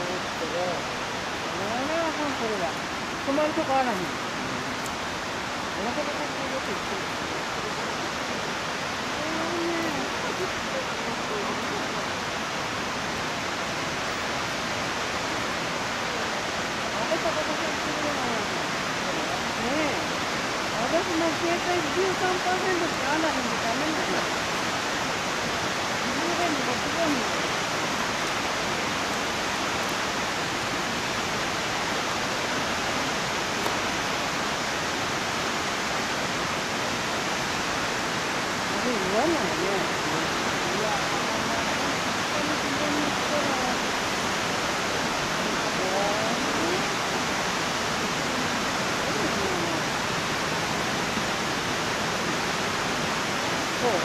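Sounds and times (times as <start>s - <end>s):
stream water rushing: 0.0s - 54.0s.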